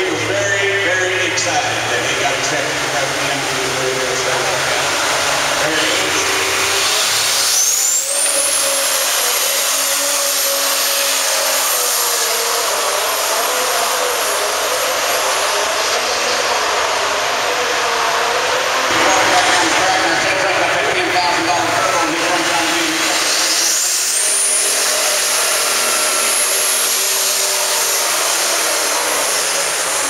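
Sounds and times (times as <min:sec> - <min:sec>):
tractor engine running: 0:00.0 - 0:30.0
tractor turbo whine: 0:00.0 - 0:30.0.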